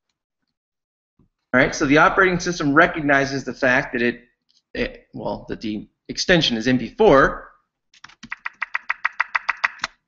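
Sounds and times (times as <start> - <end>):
typing on computer keyboard: 8.0 - 10.0.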